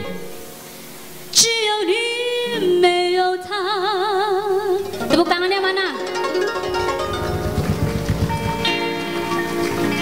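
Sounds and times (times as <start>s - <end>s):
live band playing: 4.8s - 10.0s
low rhythmic pulse: 6.0s - 9.3s.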